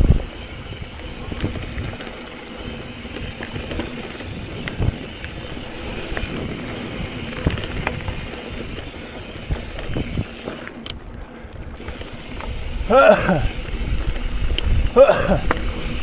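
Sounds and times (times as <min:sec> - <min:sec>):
bike knocks and rattles: 0:00.0 - 0:16.0
bike tyres rolling on dirt: 0:00.0 - 0:16.0
wind buffeting microphone: 0:00.0 - 0:16.0
rider grunting: 0:12.8 - 0:14.1, 0:14.8 - 0:16.0.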